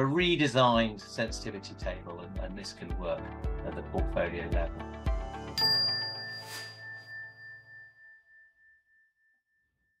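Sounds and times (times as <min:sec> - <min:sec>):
logo jingle ringing tone: 0:05.4 - 0:08.6.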